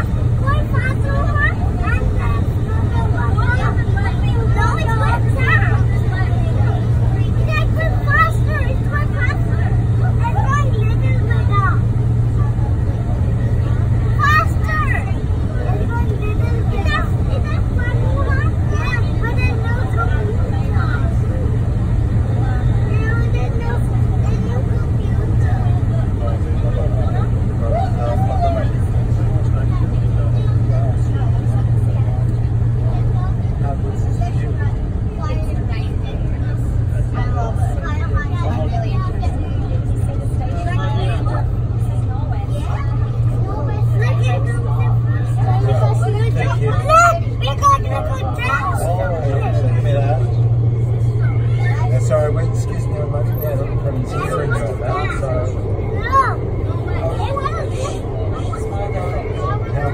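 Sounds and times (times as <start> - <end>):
faint passenger chatter: 0.0 - 59.9
train running through tunnel: 0.0 - 59.9.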